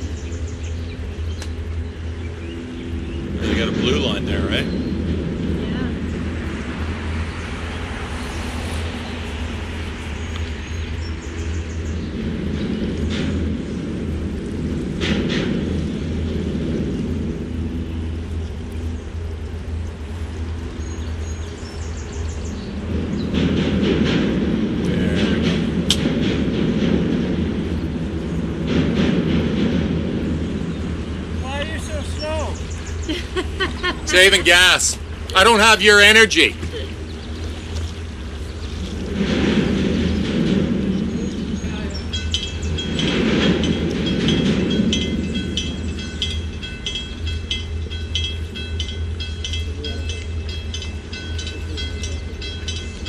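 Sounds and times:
boat engine humming: 0.0s - 53.0s.

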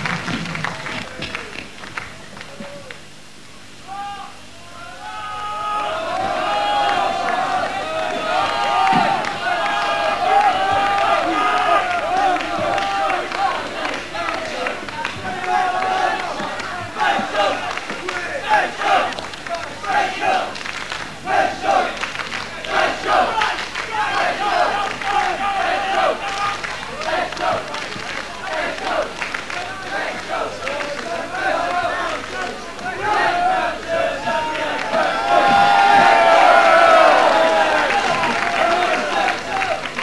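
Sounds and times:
crowd shouting and chanting: 3.8s - 40.0s.

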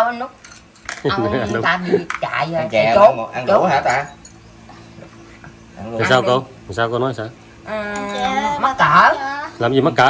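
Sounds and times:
women's voices: 7.7s - 9.6s.

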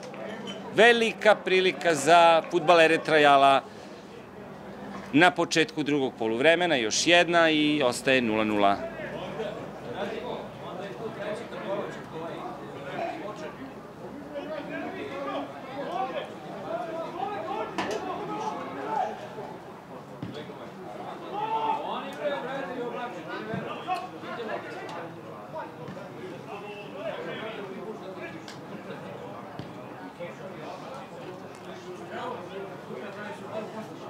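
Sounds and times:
distant players shouting: 14.1s - 19.6s, 21.0s - 22.1s, 23.1s - 24.8s.

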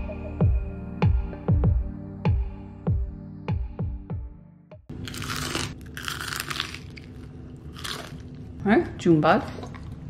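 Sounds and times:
crispy food crunching: 4.9s - 8.6s.

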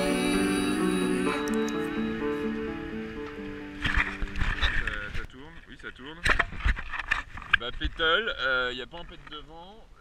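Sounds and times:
background music: 0.0s - 4.8s.

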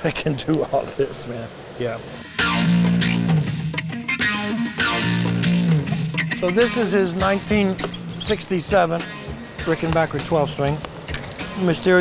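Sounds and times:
electric guitar strumming chords: 2.2s - 11.8s.

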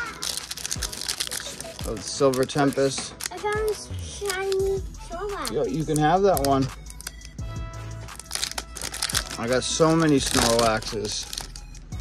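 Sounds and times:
foil wrapper crinkling: 0.0s - 7.4s, 8.0s - 12.0s
background music with held notes: 0.0s - 12.0s.

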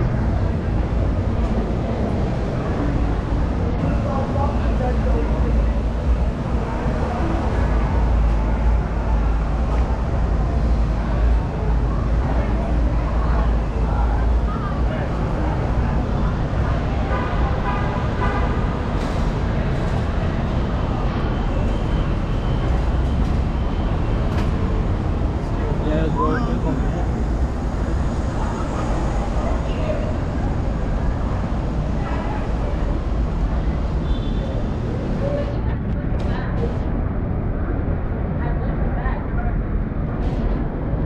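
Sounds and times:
low rumble of traffic: 0.0s - 41.0s
people's voices: 0.0s - 41.0s.

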